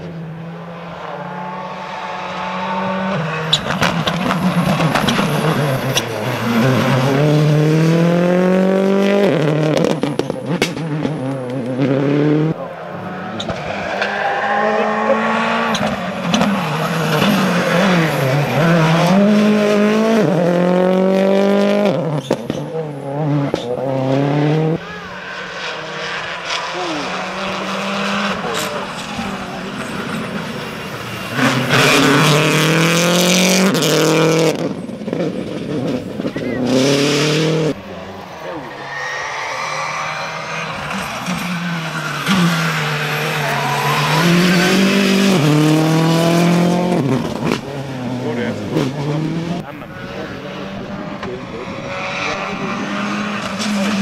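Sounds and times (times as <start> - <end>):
rally cars accelerating past: 0.0 - 54.0.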